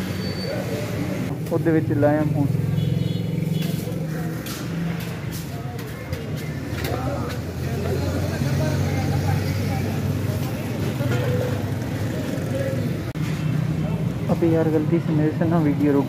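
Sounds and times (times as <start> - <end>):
low hum of street traffic: 0.0 - 16.0.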